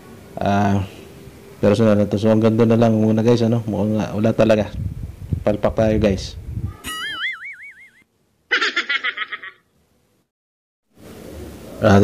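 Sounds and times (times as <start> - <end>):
cartoon boing sound effect: 6.8 - 8.0.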